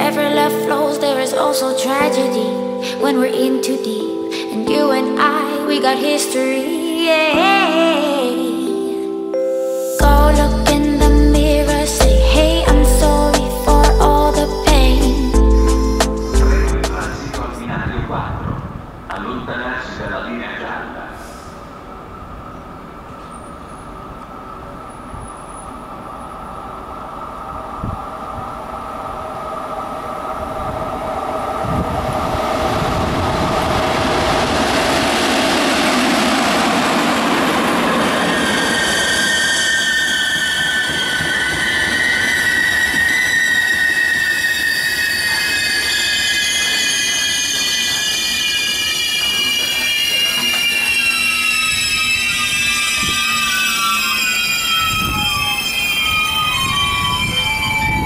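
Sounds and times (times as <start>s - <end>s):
electric train passing: 0.0s - 58.0s
train wheels squealing: 19.2s - 28.1s, 28.8s - 58.0s.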